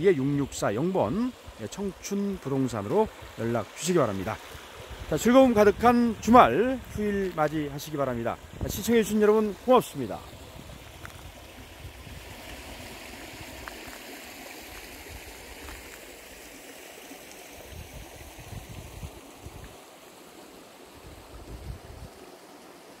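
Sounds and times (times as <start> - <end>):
stream running over rocks: 0.0 - 23.0
wind rumbling on microphone: 4.2 - 16.0, 17.6 - 19.8, 21.0 - 22.2.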